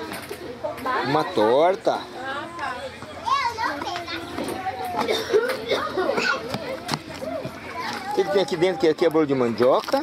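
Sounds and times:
children calling and chattering: 0.0s - 10.0s
people talking: 0.2s - 10.0s.

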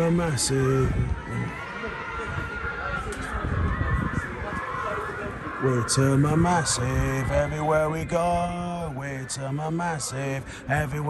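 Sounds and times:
wind rumbling on microphone: 0.0s - 9.8s
crowd voices: 0.0s - 11.0s.

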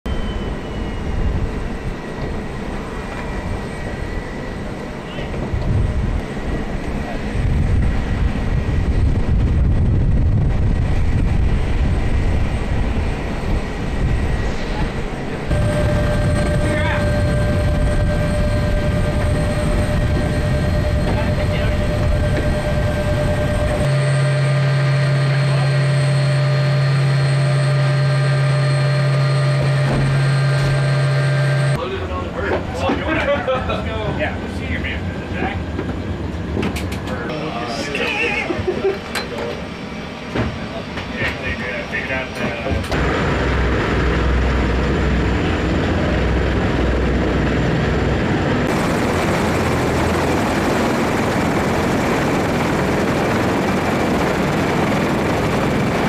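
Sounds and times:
high steady whine: 0.1s - 32.0s, 37.2s - 56.0s
aircraft low rumble: 0.1s - 56.0s
loud low hum with tones: 0.1s - 56.0s.

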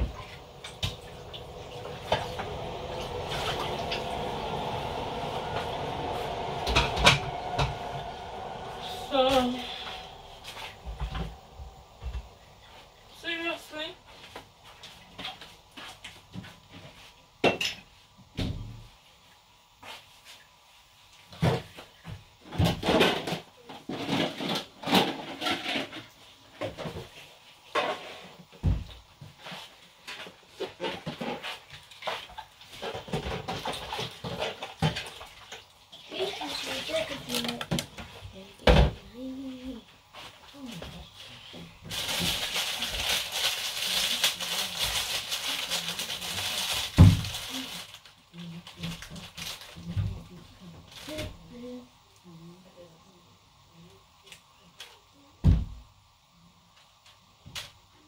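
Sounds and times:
steady hiss: 0.0s - 23.4s.

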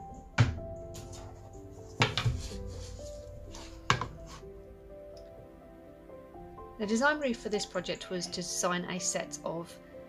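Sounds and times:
soft background music: 0.0s - 10.0s
book cover knocks: 0.4s - 0.6s, 2.0s - 2.6s.

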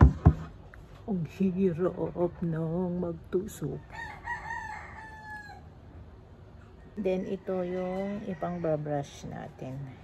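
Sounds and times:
rooster crowing: 3.9s - 5.8s.

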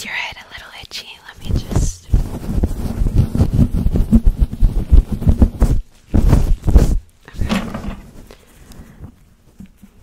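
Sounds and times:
person whispering: 0.0s - 2.2s
fingers rubbing microphone windscreen: 1.4s - 7.1s.

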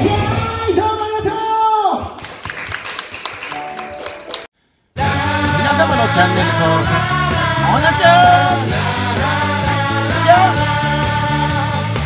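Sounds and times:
audience clapping: 2.2s - 4.5s.

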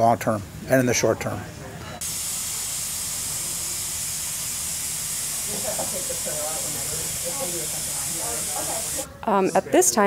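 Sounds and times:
steady hiss: 2.0s - 9.1s
faint indistinct voices: 5.4s - 10.0s.

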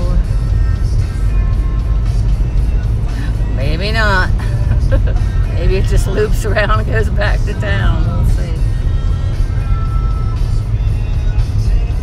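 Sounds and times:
car road and engine rumble: 0.0s - 12.0s
music on car radio: 0.0s - 12.0s.

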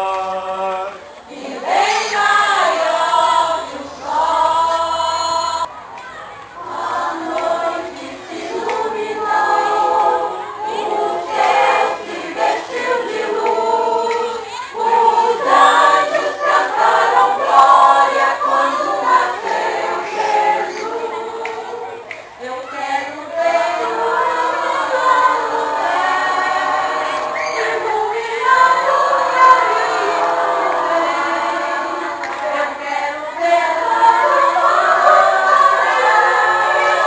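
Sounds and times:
choir singing: 0.0s - 5.7s, 6.6s - 37.0s.

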